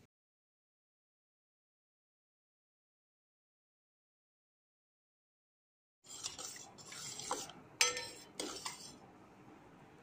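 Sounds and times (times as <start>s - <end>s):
metal spoon clinking on steel: 7.8s - 8.8s.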